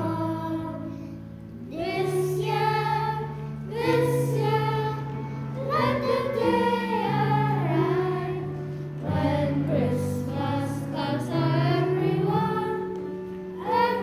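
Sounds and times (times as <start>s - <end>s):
children singing in unison: 0.0s - 14.0s
low instrumental accompaniment: 0.0s - 14.0s.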